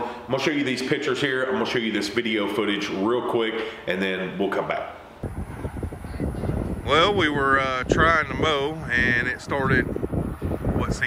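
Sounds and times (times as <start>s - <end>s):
man speaking: 0.0s - 5.0s, 6.8s - 9.9s, 10.8s - 11.0s
wind buffeting microphone: 5.2s - 11.0s.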